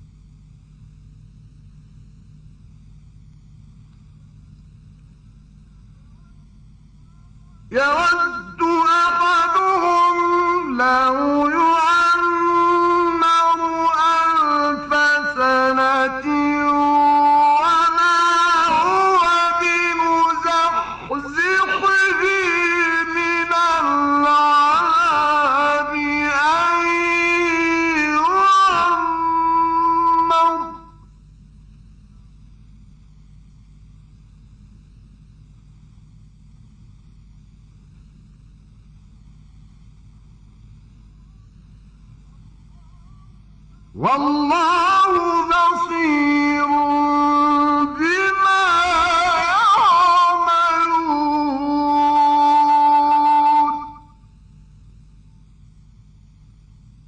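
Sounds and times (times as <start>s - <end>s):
man chanting long note: 5.6s - 31.2s, 41.0s - 54.3s.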